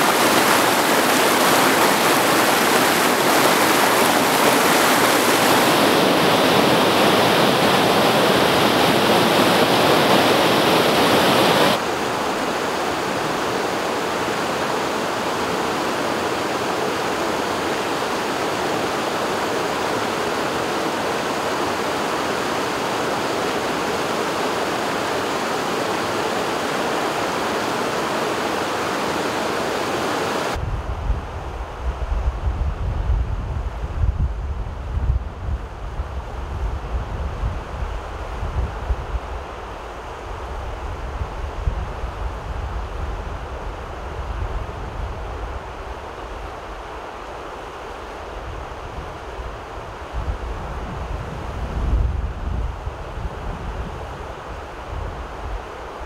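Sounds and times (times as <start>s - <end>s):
river rapids rushing: 0.0s - 30.6s.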